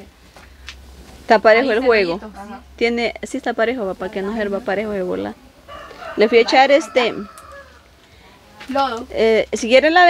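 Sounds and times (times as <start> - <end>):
hens clucking: 3.7 - 10.0
rooster crowing: 5.4 - 8.2.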